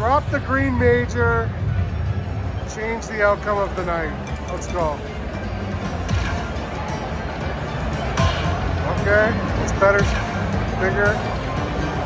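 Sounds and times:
steady background din: 0.0s - 12.0s
slot machine music and effects: 4.0s - 12.0s.

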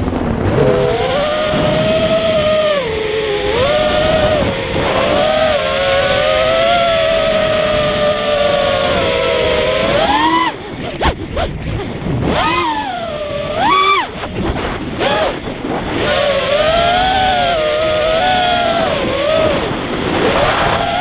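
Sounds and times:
quadcopter motors whining: 0.0s - 21.0s
wind noise: 0.0s - 21.0s.

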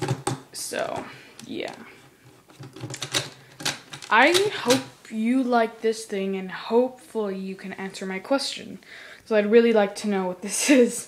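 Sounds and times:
plastic toy parts clicking: 2.6s - 4.9s.

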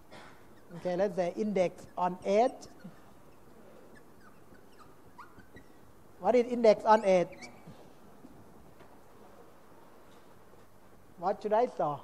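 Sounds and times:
faint high squeaks: 0.2s - 5.9s, 6.7s - 8.0s.

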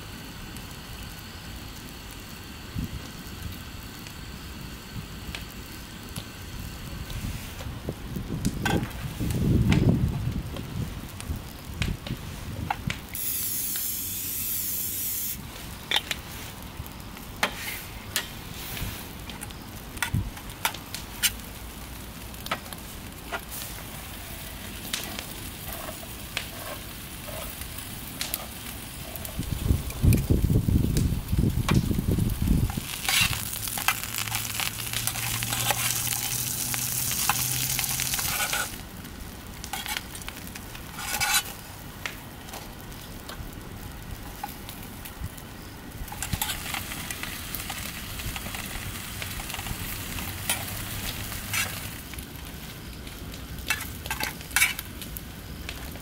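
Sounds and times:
bread sizzling in a frying pan: 0.0s - 56.0s.

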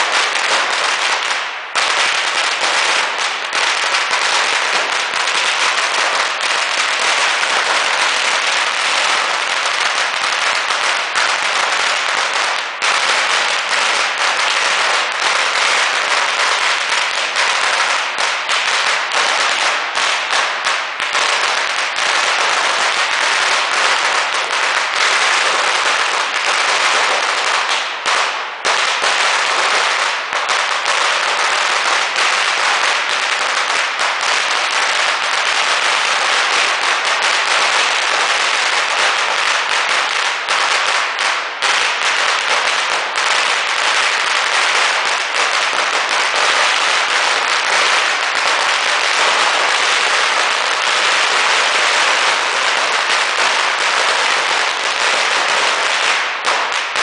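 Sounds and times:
firecrackers crackling: 0.0s - 57.0s.

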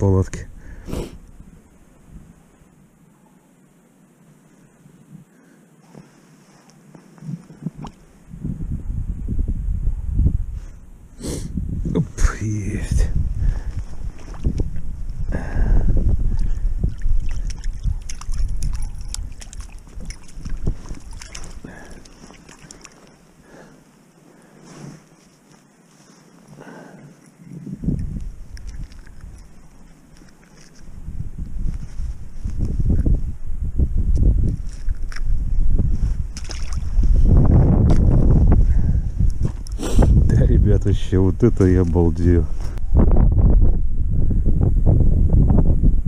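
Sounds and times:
wind buffeting microphone: 7.4s - 23.0s, 27.4s - 29.8s, 30.8s - 46.0s.

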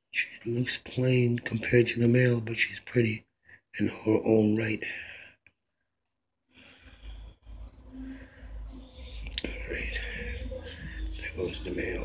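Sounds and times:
man whispering: 0.1s - 5.4s, 7.9s - 12.0s.

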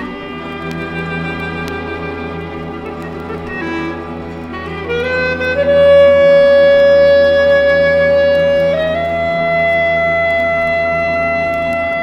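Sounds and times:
clarinet holding long note: 0.0s - 12.0s
soft orchestral accompaniment: 0.0s - 12.0s.

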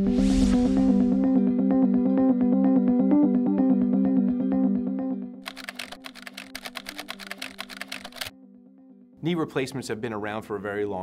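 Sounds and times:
keyboard typing clicks: 5.4s - 8.3s.

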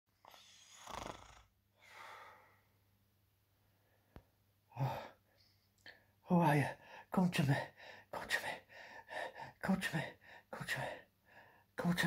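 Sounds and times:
man breathing heavily: 1.8s - 2.7s, 7.7s - 9.6s.

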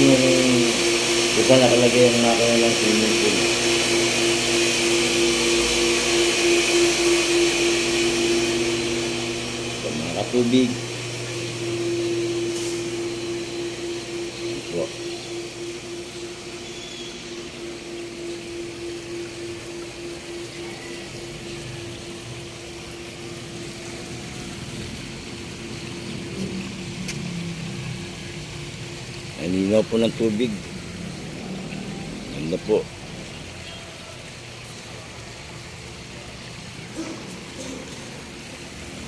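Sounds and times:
pool filter pump motor humming: 0.0s - 39.0s.

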